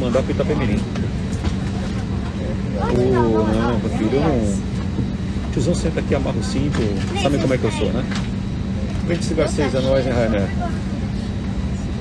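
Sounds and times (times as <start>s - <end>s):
airliner cabin drone: 0.0s - 12.0s.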